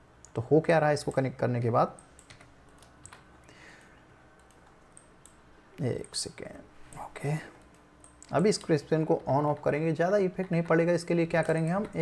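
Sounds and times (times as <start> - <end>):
keyboard and mouse clicks: 2.0 - 6.2, 7.6 - 9.7, 11.3 - 12.0.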